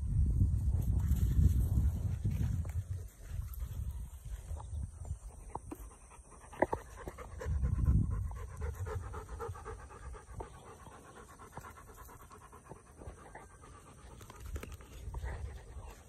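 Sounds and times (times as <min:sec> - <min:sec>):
dogs panting: 0:03.2 - 0:16.0.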